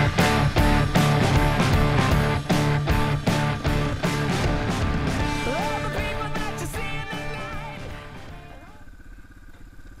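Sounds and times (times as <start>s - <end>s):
background music: 0.0s - 8.6s
dirt bike engine at low revs: 0.0s - 10.0s.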